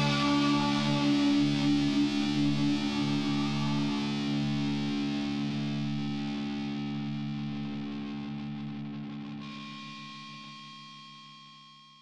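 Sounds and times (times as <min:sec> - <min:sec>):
high steady tone: 0:00.0 - 0:04.9
distorted electric guitar chord: 0:00.0 - 0:10.2.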